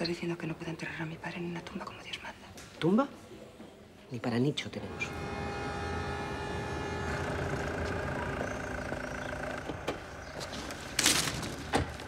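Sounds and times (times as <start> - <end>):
city traffic rumble: 4.6 - 12.0.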